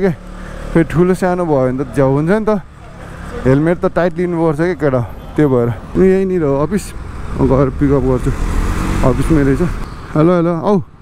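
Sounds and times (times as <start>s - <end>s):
motorcycle rumble: 0.0s - 10.4s.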